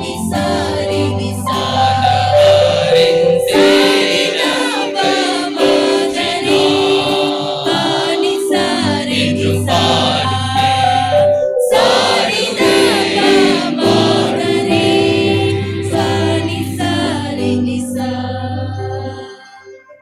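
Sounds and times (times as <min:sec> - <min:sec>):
choir singing a hymn: 0:00.0 - 0:19.8
sustained accompanying notes: 0:00.0 - 0:20.0.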